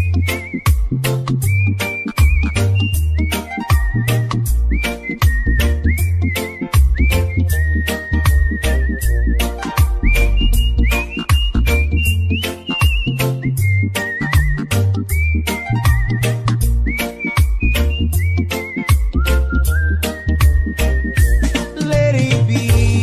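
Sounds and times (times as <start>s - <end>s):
drum beat: 0.0s - 7.6s, 8.2s - 13.6s, 14.4s - 14.8s, 15.4s - 23.0s
heavy bass line: 0.0s - 23.0s
whistle-like lead melody: 0.0s - 23.0s.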